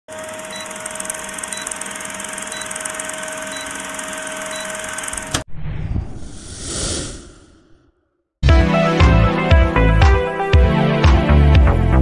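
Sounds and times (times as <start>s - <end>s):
film projector whir and crackle: 0.1s - 5.4s.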